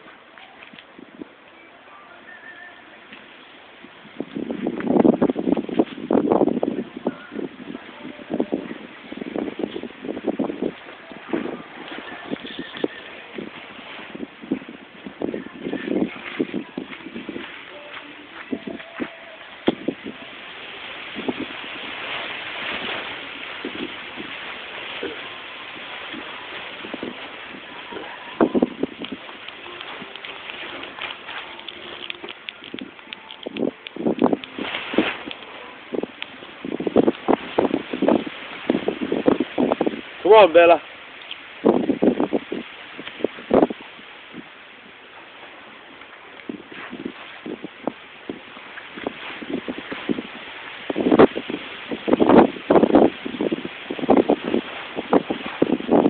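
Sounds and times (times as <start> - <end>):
steady outdoor hiss: 0.0 - 56.0.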